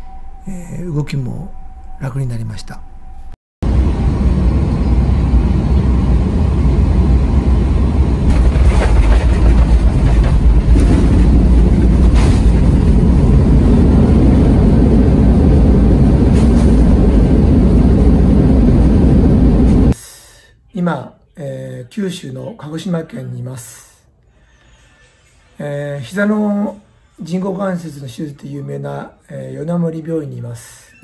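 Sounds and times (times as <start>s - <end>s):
jet engines and wheels rumbling: 2.9s - 20.0s.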